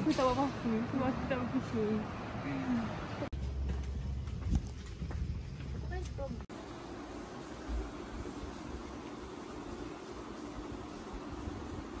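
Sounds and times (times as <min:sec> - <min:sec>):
footsteps on paved path: 0:03.2 - 0:06.5.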